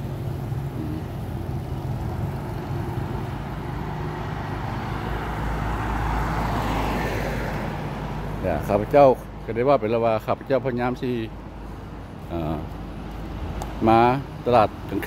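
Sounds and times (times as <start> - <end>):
vehicle passing: 0.0 - 9.1.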